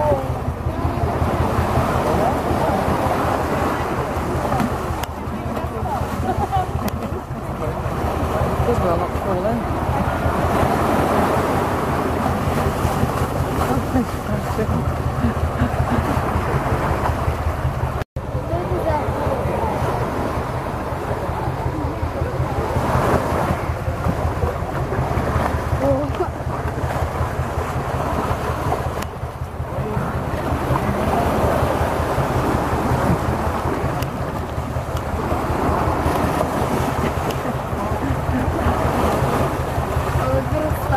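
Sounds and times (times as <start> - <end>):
surf washing on sand: 0.0 - 40.9
water sloshing: 0.0 - 40.9
wind rumble on microphone: 0.0 - 40.9.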